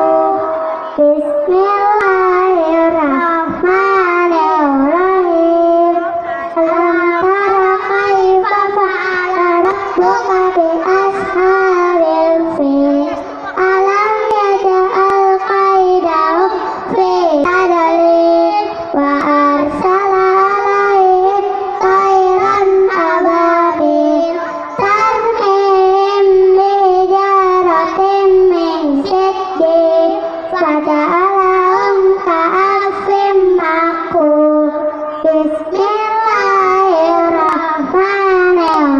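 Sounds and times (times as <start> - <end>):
children singing into microphones: 0.0 - 38.9.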